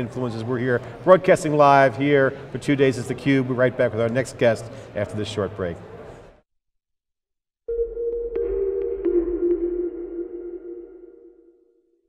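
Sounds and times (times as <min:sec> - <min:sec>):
synth tone: 0:07.7 - 0:12.0.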